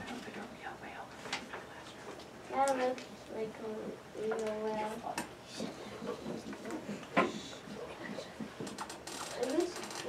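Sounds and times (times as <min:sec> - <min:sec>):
rapid small clicks: 0:08.6 - 0:10.0.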